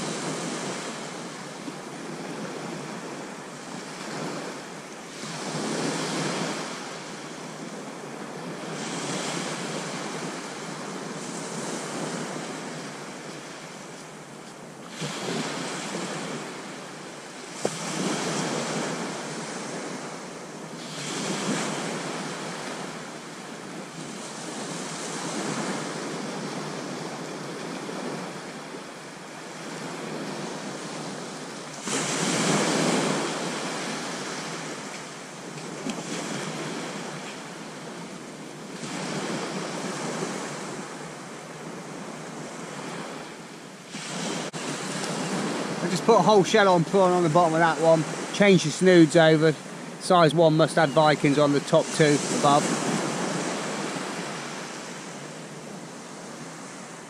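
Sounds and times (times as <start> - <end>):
small waves breaking on beach: 0.0 - 57.0.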